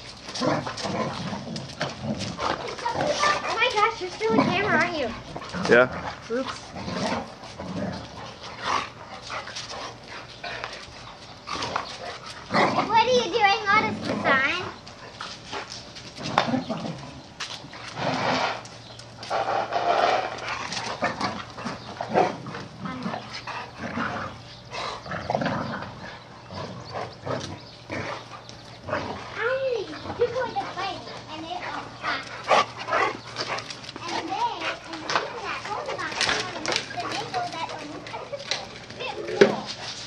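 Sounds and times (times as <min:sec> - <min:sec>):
dogs play-fighting: 0:00.0 - 0:40.0.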